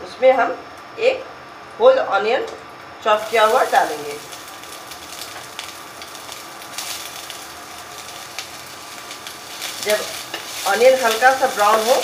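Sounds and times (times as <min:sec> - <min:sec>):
onion sizzling in hot oil: 0:03.0 - 0:12.0
small crackles: 0:03.3 - 0:12.0.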